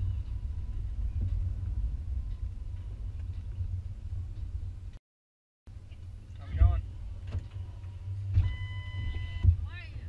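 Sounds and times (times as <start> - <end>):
car door opening and shutting: 6.5 - 9.6.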